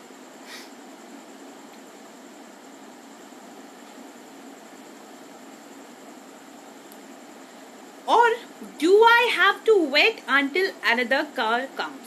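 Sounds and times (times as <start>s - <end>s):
faint high whine: 0.0s - 12.0s
room tone hiss: 0.0s - 12.0s.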